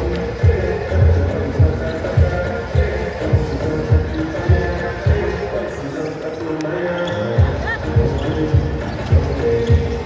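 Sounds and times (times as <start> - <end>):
music with steady beat: 0.0 - 5.9, 7.3 - 10.0
basketballs bouncing: 7.4 - 10.0.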